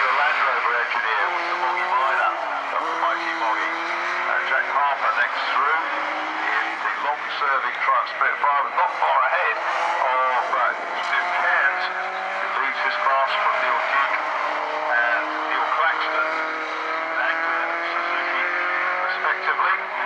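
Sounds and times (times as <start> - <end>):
racing car engines passing: 0.0 - 20.0.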